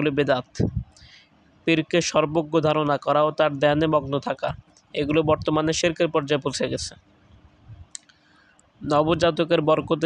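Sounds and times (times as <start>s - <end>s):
man speaking: 0.0s - 1.1s, 1.7s - 7.0s, 8.8s - 10.0s
faint steady hum: 0.0s - 10.0s.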